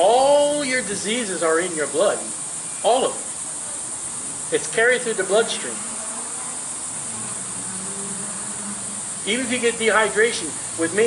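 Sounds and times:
faint low hum: 0.0s - 11.0s
high-pitched hiss: 0.0s - 11.0s.

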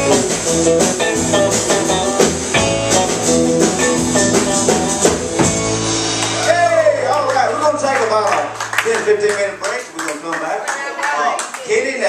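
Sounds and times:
audience clapping: 6.1s - 12.0s.

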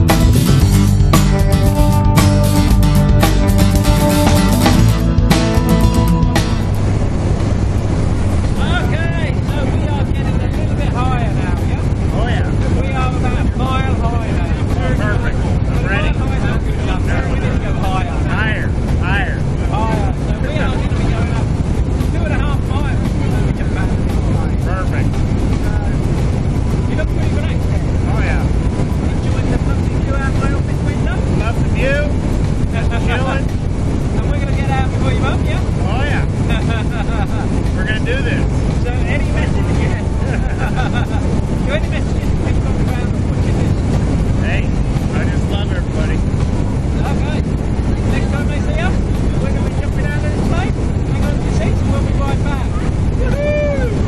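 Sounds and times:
indistinct voices talking: 0.0s - 54.0s
plane engine and propeller drone: 1.8s - 54.0s.

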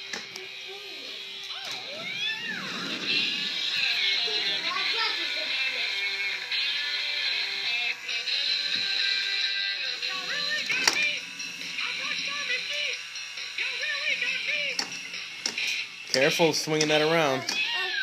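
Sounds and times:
electronic rock tune from toy: 0.0s - 18.0s
person singing: 3.2s - 14.9s.

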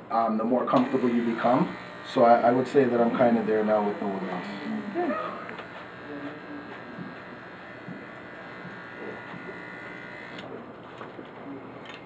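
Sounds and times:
electric hair clippers buzzing: 0.7s - 10.5s.

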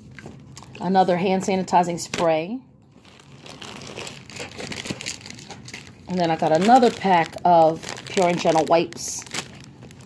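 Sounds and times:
plastic packaging crinkling: 2.9s - 10.0s.

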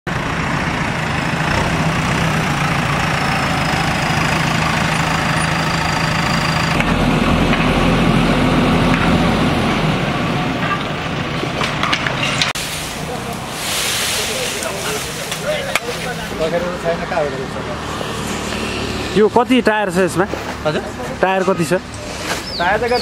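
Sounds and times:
diesel engine running: 0.1s - 22.3s.

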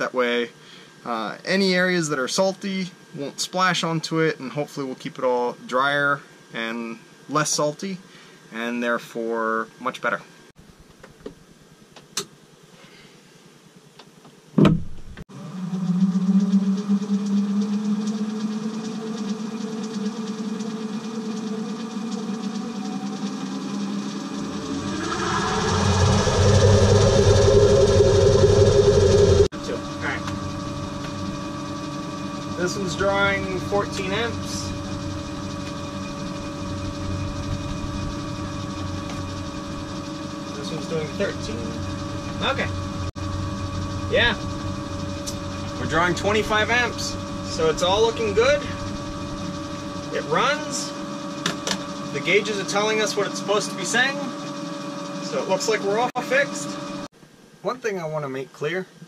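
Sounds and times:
motor switching on thump: 14.0s - 15.2s, 51.4s - 51.9s
electric boat motor humming: 15.3s - 57.1s.

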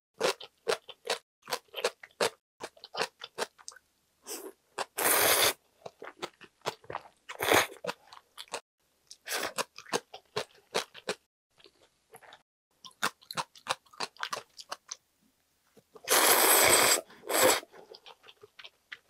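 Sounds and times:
wet chewing: 5.8s - 15.0s, 17.4s - 19.0s
noodles slurped: 16.0s - 18.6s.

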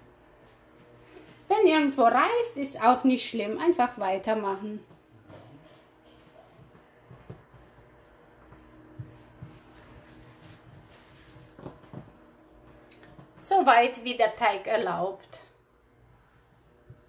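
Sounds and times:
hands rubbing dough: 4.9s - 13.6s, 15.6s - 17.0s.

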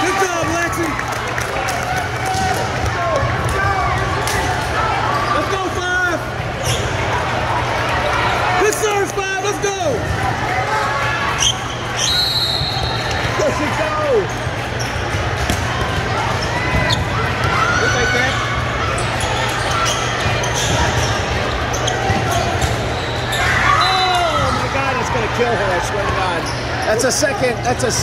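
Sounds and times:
volleyballs struck and bouncing: 14.5s - 17.8s.

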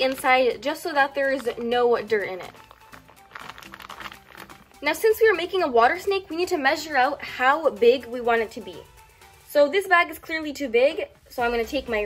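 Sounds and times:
plastic bag crinkling: 0.0s - 5.7s
quiet background music: 0.0s - 12.0s.

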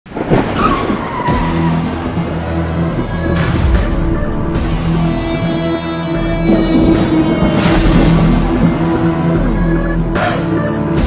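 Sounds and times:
low dramatic music tones: 0.2s - 11.0s
sudden hit: 3.3s - 9.9s.

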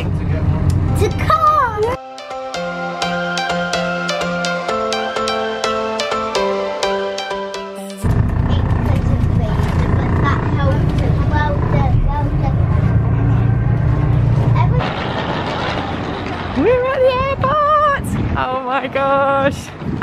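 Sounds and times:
bus engine rumble: 0.0s - 2.0s, 8.0s - 18.3s
road noise: 0.0s - 2.0s, 8.0s - 18.4s
child's high voice: 1.0s - 2.0s.

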